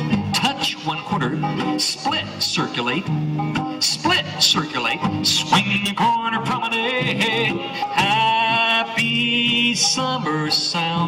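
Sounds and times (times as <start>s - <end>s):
country instrumental music: 0.0s - 11.0s
man singing a square dance call: 0.3s - 3.2s, 3.8s - 11.0s.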